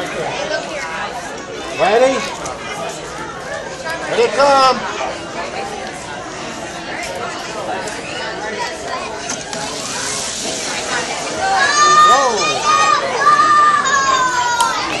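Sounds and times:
children chattering: 0.0s - 15.0s
children shrieking and cheering: 9.5s - 15.0s.

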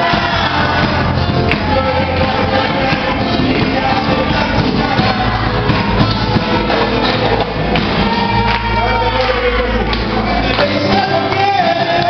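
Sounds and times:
live cumbia band playing: 0.0s - 12.0s.

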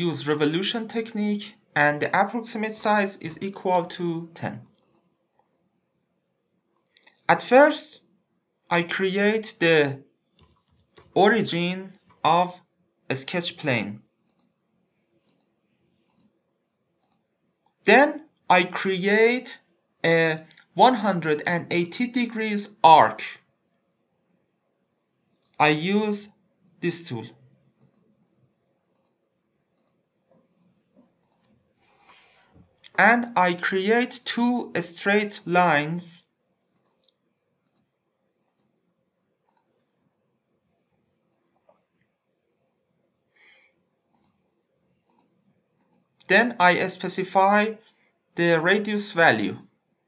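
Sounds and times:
computer mouse clicks: 4.7s - 5.5s, 10.3s - 11.2s, 14.2s - 14.6s, 15.2s - 16.4s, 17.0s - 17.3s, 27.8s - 28.2s, 28.9s - 32.2s, 36.7s - 38.8s, 39.4s - 40.0s, 43.6s - 46.3s.

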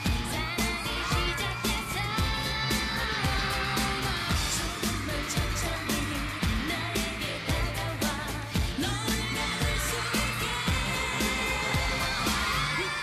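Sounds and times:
electronic dance beat: 0.0s - 13.0s
female voices singing: 0.0s - 13.0s.

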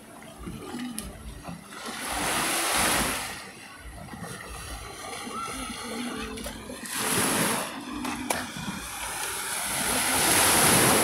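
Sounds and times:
sea waves breaking on beach: 1.6s - 11.0s.

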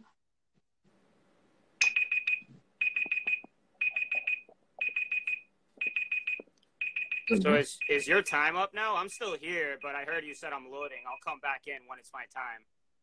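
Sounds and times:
electronic timer alarm beeping: 1.8s - 11.4s.

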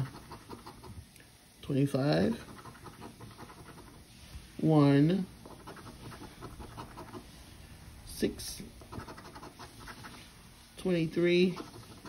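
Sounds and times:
coin scraping scratch card: 0.0s - 0.9s, 2.4s - 4.0s, 5.4s - 7.2s, 8.9s - 10.2s, 11.4s - 12.0s.

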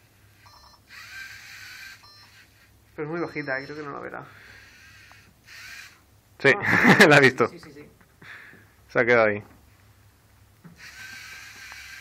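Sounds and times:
robot motors and gears whirring: 0.9s - 2.7s, 10.8s - 12.0s.

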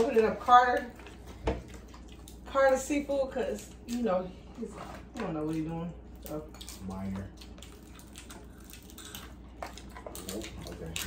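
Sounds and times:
wet chewing and smacking: 0.0s - 2.8s, 5.0s - 11.0s.

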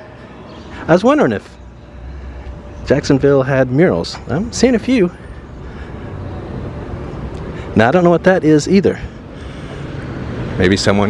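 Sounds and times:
city street traffic hum: 0.0s - 11.0s.

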